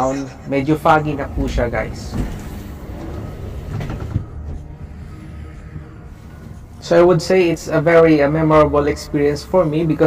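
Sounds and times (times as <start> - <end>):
ski-lift cabin rumble and hum: 0.0 - 10.0.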